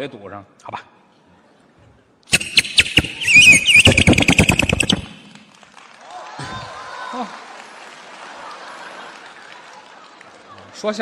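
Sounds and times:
chirping clicks: 0:02.3 - 0:05.4
warbling high whistle: 0:02.3 - 0:05.4.

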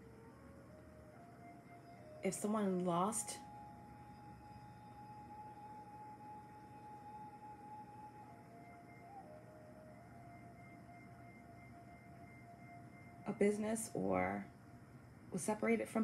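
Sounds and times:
ambient music of held tones: 0:00.0 - 0:15.0.

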